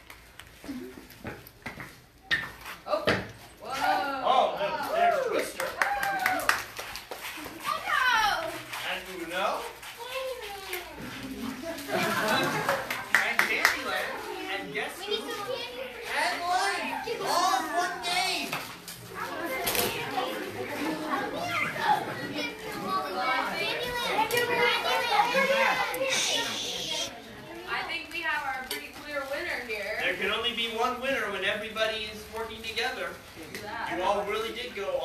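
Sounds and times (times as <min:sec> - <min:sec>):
children talking and calling out: 0:07.4 - 0:08.7, 0:09.7 - 0:12.6, 0:13.9 - 0:28.2
indistinct voices talking: 0:23.9 - 0:27.3.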